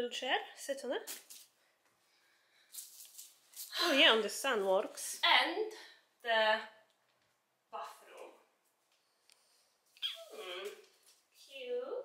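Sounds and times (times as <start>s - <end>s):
woman's wordless vocal sounds: 10.2s - 10.8s.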